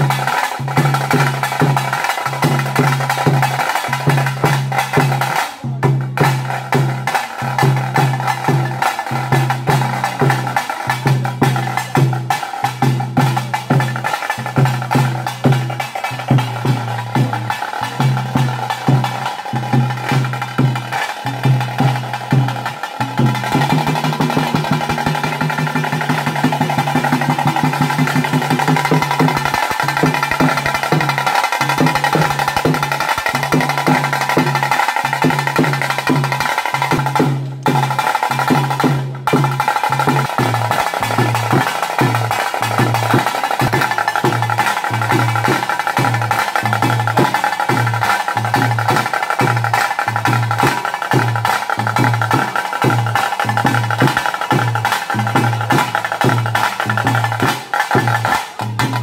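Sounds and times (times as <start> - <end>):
fast drumming: 0.0 - 59.0.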